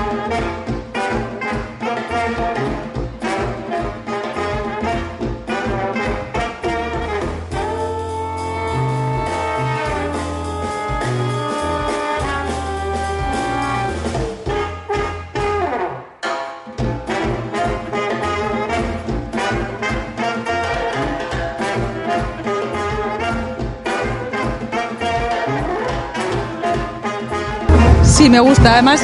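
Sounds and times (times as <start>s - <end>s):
jazz music with brass horns: 0.0s - 29.0s.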